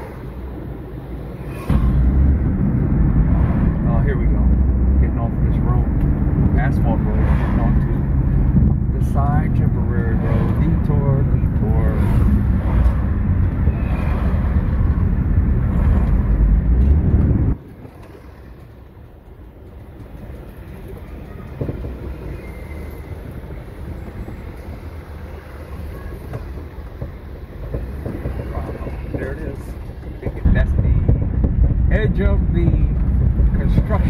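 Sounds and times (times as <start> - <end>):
car driving on dirt road: 0.0 - 34.0.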